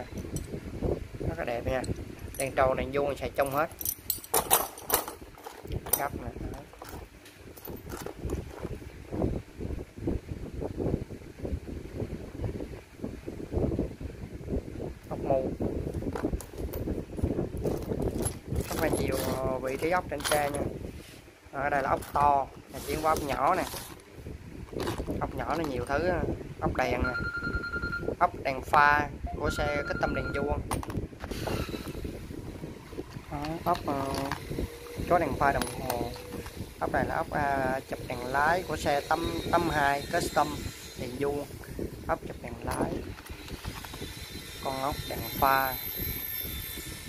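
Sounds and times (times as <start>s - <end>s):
wind buffeting microphone: 0.0s - 47.0s
hand rummaging through metal screws: 1.8s - 8.6s, 17.6s - 20.7s, 21.7s - 24.1s, 24.7s - 26.0s, 33.1s - 37.0s, 42.6s - 44.4s.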